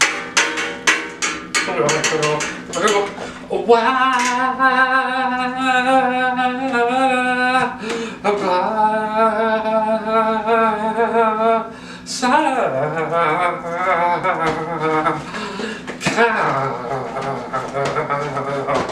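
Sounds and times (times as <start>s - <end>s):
man singing sustained notes: 1.7s - 18.9s.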